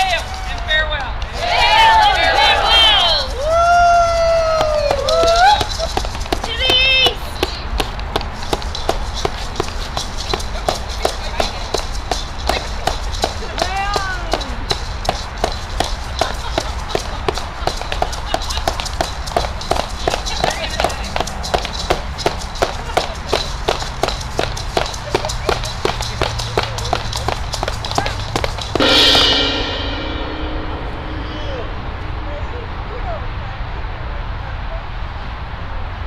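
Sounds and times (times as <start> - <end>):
voices whooping: 0.0 - 6.0.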